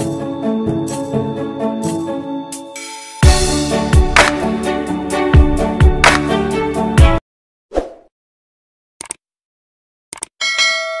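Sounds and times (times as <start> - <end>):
quick clicks: 9.0 - 9.2, 10.1 - 10.3
bell ding: 10.4 - 11.0.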